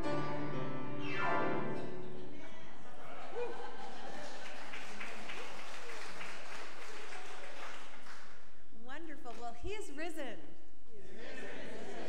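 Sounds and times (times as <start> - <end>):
congregation applauding: 2.2 - 8.6.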